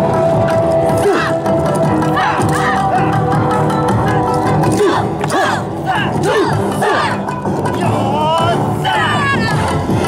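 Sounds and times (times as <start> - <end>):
loud dance music: 1.0 - 10.0
dancers shouting in chorus: 4.6 - 7.3.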